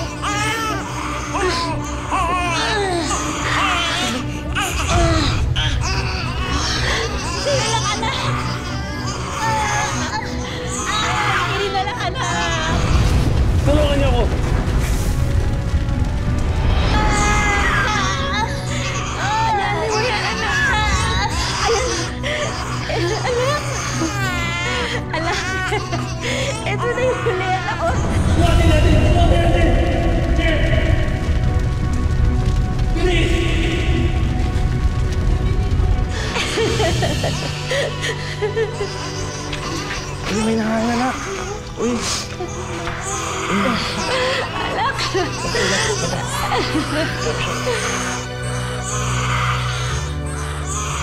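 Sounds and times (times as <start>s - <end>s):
newborn baby crying: 0.0s - 12.9s, 16.9s - 28.0s
low background music: 0.0s - 51.0s.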